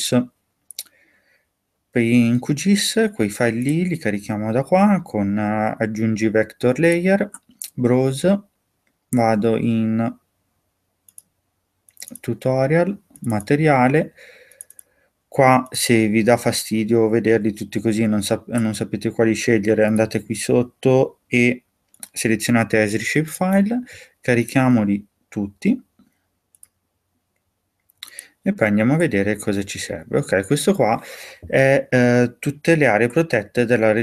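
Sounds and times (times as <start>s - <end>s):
computer mouse clicking: 11.1s - 11.3s, 11.9s - 12.2s, 14.5s - 14.9s, 21.9s - 22.2s, 26.5s - 26.8s
faint computer mouse clicks: 11.1s - 11.3s, 14.5s - 14.9s, 26.0s - 26.8s.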